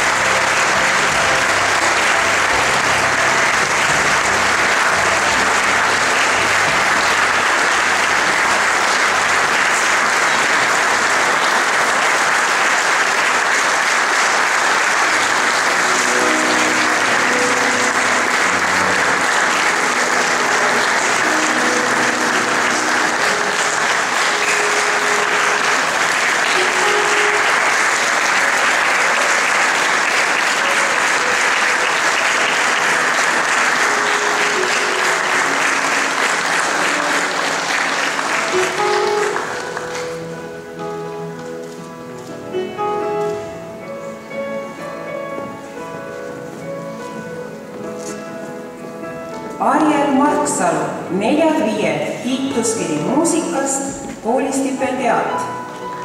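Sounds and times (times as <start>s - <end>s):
audience applauding: 0.0s - 41.8s.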